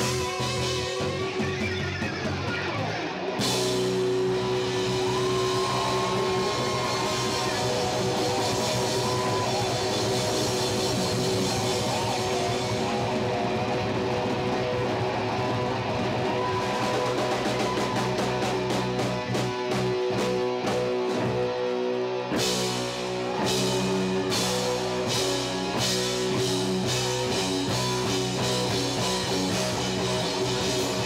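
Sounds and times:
electric guitar lead: 0.0s - 31.0s
hard rock band playing: 0.0s - 31.0s.

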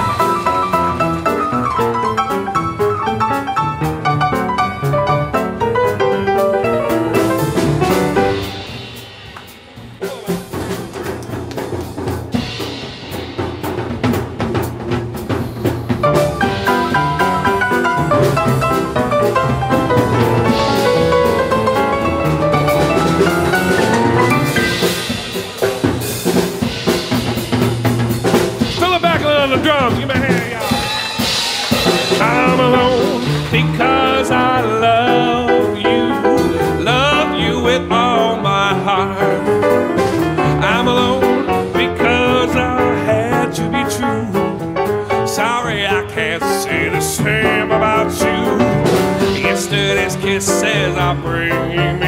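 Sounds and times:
upright piano playing: 0.0s - 52.0s
cymbal crash: 8.2s - 11.1s.

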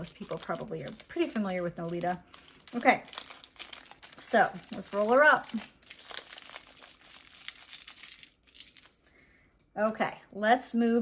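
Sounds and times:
paper crinkling: 0.0s - 9.7s.

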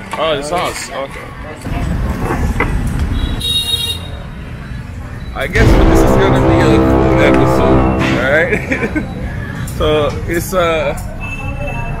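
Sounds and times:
car horn toot: 5.6s - 8.7s.

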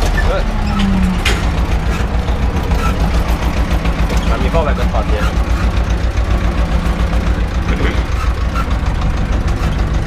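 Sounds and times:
tractor diesel engine rumble: 0.0s - 10.0s.

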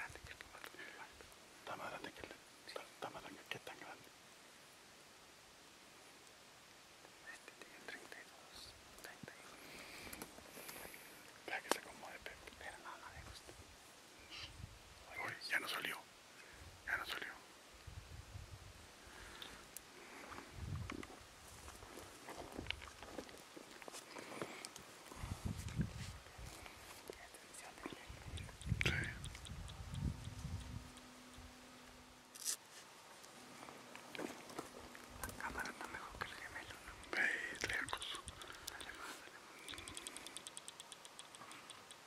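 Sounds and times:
people whispering: 0.0s - 4.1s, 7.2s - 13.4s, 15.1s - 16.1s, 16.9s - 17.4s, 26.2s - 29.4s, 35.2s - 40.0s
microphone handling noise: 25.1s - 27.1s.

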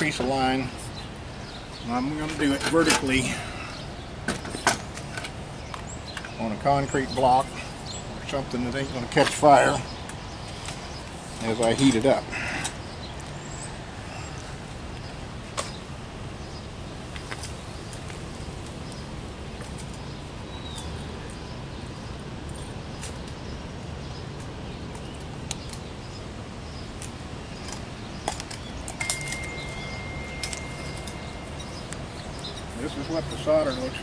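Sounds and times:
steady low hum: 12.2s - 33.6s
thin steady tone: 29.0s - 33.1s.

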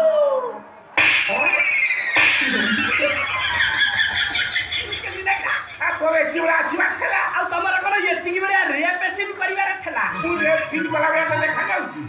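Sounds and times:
audience laughter: 1.2s - 6.4s.

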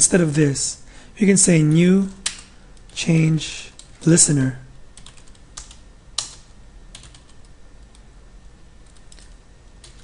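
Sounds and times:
computer keyboard keystrokes: 2.1s - 3.0s, 5.0s - 8.0s, 8.8s - 10.0s.

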